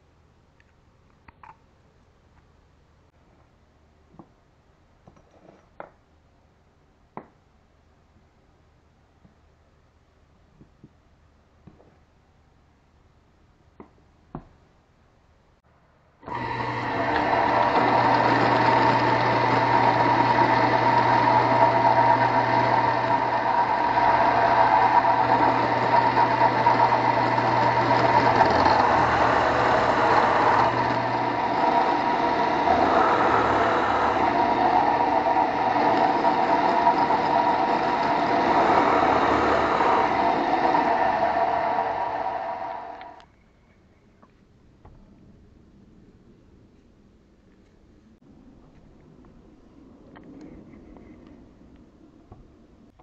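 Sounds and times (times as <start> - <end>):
drill press boring into wood: 16.2 - 43.2.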